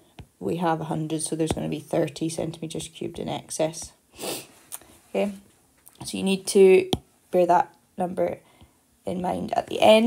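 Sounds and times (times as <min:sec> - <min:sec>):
person sniffing: 0:04.2 - 0:04.9.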